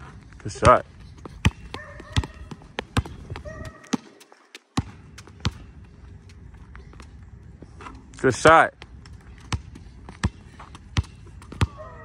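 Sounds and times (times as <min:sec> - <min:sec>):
basketball bouncing on asphalt: 0:00.0 - 0:07.6, 0:08.7 - 0:12.0.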